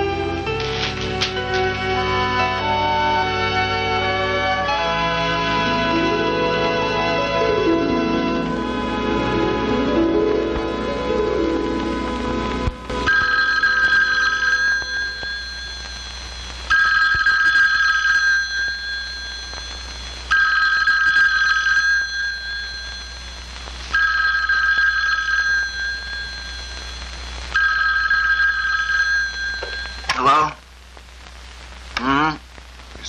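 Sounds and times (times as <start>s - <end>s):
desk telephone ringing: 13.0s - 27.0s, 27.6s - 30.4s.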